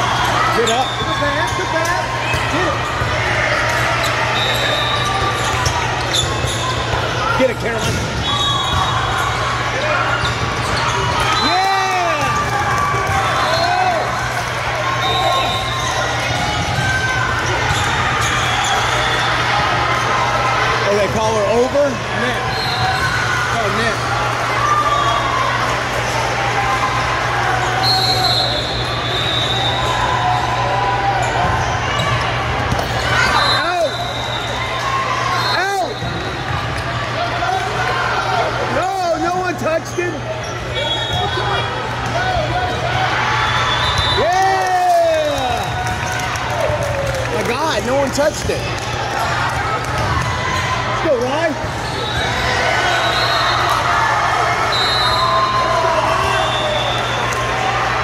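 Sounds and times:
shoes squeaking on court floor: 3.8 - 11.4.

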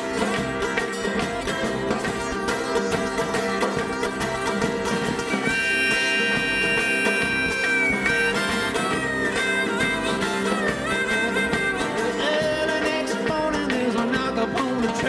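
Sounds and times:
banjo: 0.0 - 15.0
bluegrass string band playing: 0.0 - 15.0
mandolin: 0.0 - 15.0
strummed guitars: 0.0 - 15.0
upright bass: 0.0 - 15.0
lead instrument sliding melody: 2.0 - 12.8.

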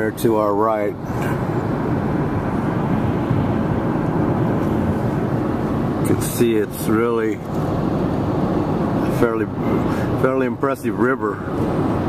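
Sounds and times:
car driving at speed: 0.0 - 12.0.

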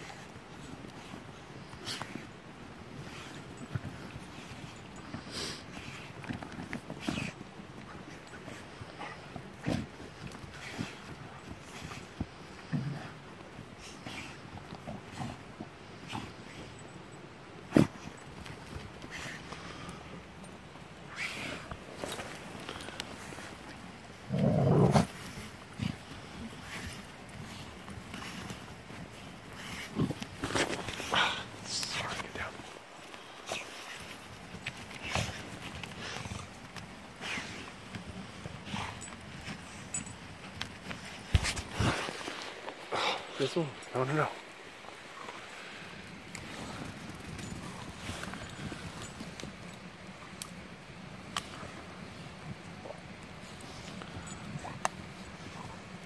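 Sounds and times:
paws scraping in dirt: 0.0 - 56.0
rustling in undergrowth: 0.0 - 56.0
dog growl: 24.2 - 26.0.

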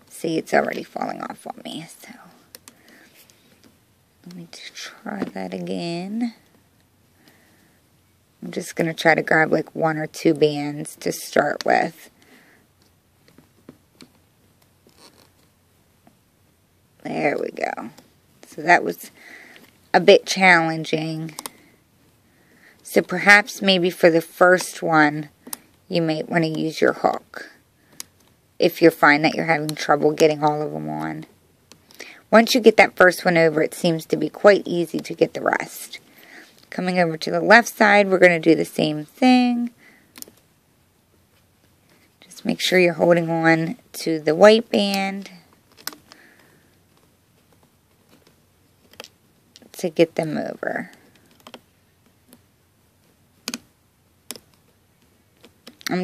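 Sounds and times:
small sharp clicks: 53.4 - 54.7.

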